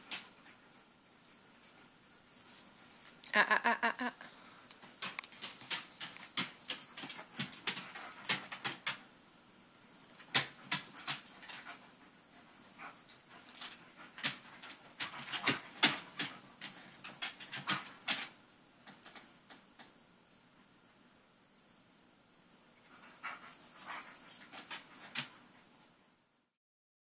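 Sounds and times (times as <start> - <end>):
puppy clicks and taps: 4.7 - 9.0, 13.6 - 20.0.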